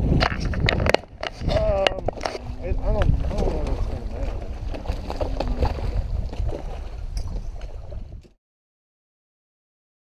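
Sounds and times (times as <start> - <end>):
wind rumble on microphone: 0.0 - 8.4.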